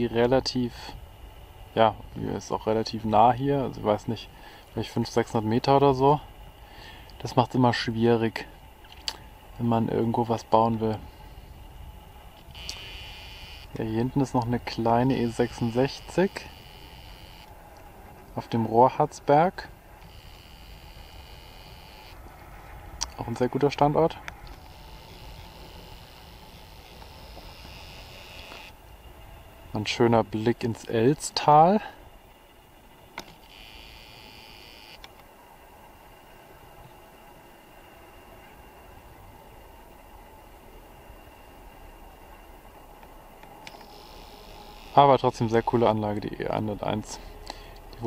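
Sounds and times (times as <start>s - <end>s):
low steady rumble: 0.0s - 48.0s
wind rumble on microphone: 9.3s - 13.1s
camera zoom motor whine: 12.3s - 13.8s, 15.0s - 17.6s, 20.0s - 22.2s, 24.5s - 28.8s, 33.2s - 35.1s, 43.7s - 45.2s
camera click: 43.7s - 44.0s.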